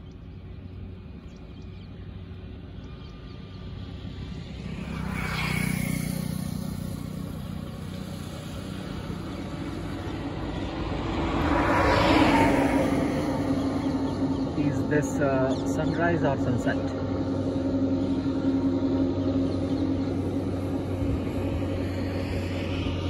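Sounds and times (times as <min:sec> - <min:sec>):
road vehicles passing: 0:00.0 - 0:23.0.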